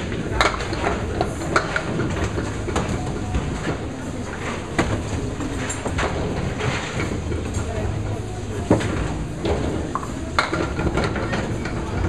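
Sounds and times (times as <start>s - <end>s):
bowling balls rolling on wooden lanes: 0.0s - 12.0s.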